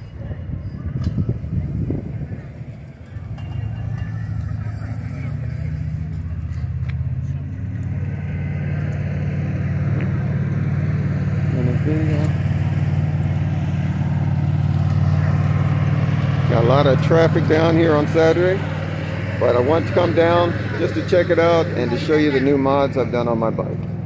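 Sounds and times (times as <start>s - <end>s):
vehicle engine idling: 0.0s - 24.0s.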